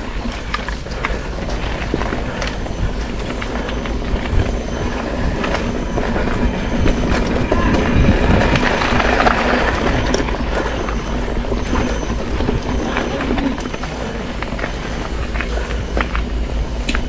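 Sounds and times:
bike rattling: 0.0s - 17.0s
tyre and ground noise: 0.0s - 17.0s
wind rumbling on microphone: 0.0s - 17.0s.

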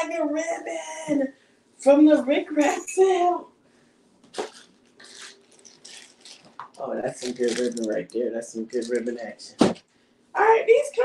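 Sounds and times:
plastic bag crinkling: 4.3s - 9.3s.

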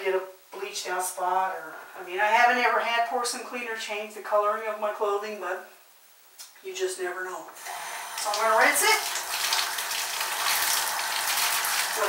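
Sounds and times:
shower spray hissing: 7.6s - 12.0s.

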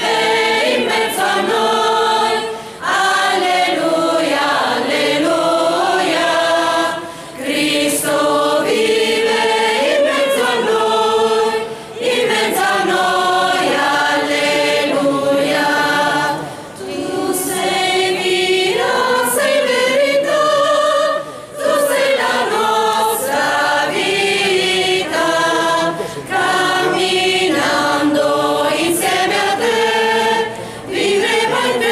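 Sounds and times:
mixed choir singing a cappella: 0.0s - 31.9s
singers breathing: 2.4s - 2.9s, 6.9s - 7.5s, 11.6s - 12.0s, 16.4s - 16.8s, 21.2s - 21.6s, 25.9s - 26.3s, 30.5s - 31.0s.

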